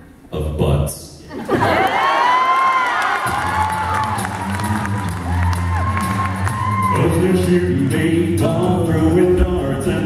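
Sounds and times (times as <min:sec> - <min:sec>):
audience cheering and whooping: 0:01.4 - 0:07.6
a cappella group singing bass notes: 0:06.7 - 0:10.0.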